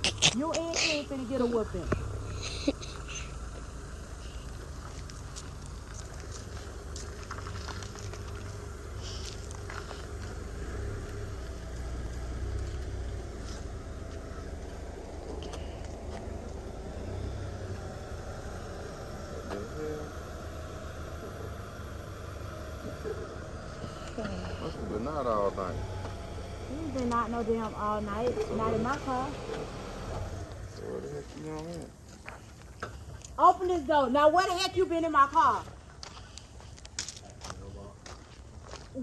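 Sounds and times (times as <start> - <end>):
car engine running: 0.0 - 36.0.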